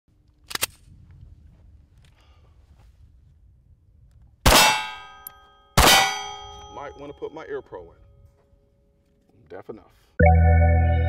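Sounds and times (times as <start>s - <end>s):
pistol shots: 4.5s - 5.0s, 5.8s - 6.3s
steel target ringing: 4.5s - 7.4s.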